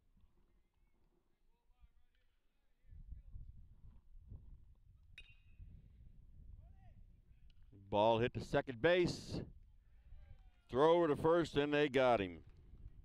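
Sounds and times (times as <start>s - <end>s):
wind rumbling on microphone: 2.9s - 10.4s.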